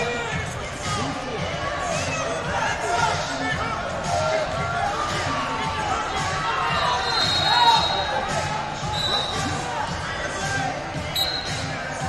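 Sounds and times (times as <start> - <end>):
voices and shouts echoing: 0.0 - 12.0.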